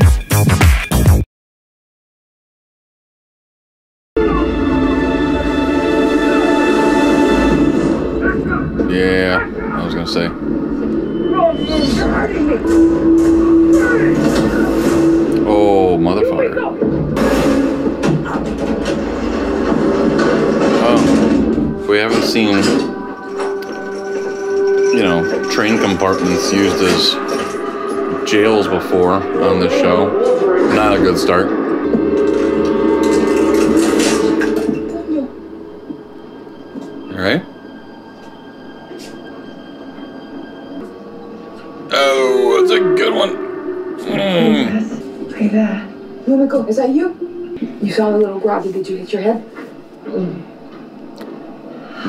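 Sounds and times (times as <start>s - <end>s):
steady low drone: 4.2s - 52.0s
low rumble: 4.7s - 51.7s
train clacks and rattles: 6.1s - 43.9s, 44.9s - 51.8s.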